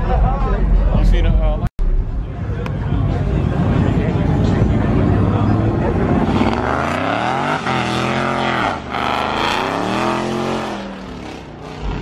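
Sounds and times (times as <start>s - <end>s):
car engine revving: 2.9s - 12.0s.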